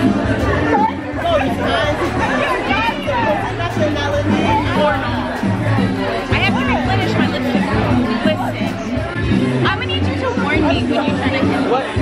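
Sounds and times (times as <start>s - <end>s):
background chatter: 0.0s - 12.0s
people talking close up: 0.0s - 12.0s.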